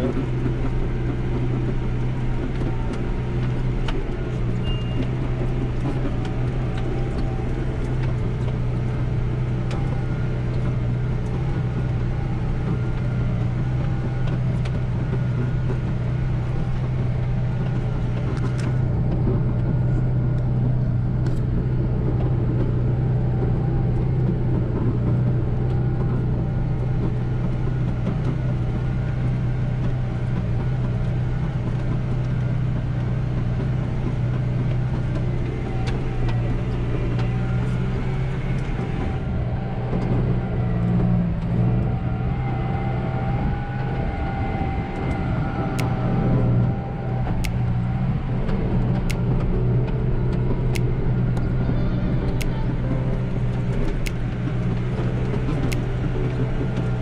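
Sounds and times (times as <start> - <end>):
tractor diesel engine under load: 0.0 - 57.0.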